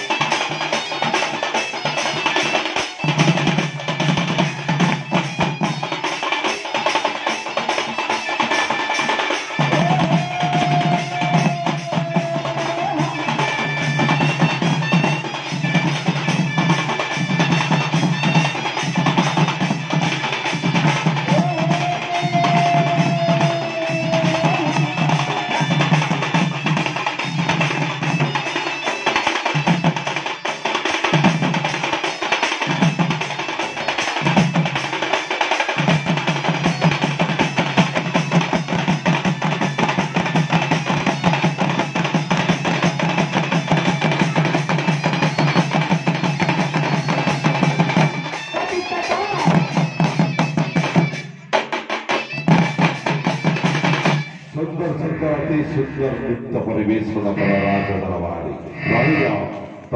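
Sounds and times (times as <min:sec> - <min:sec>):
folk drum ensemble: 0:00.0 - 0:59.9.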